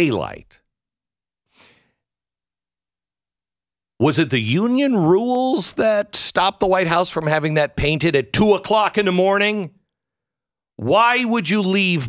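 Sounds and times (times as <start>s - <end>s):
man breathing: 1.5s - 2.1s.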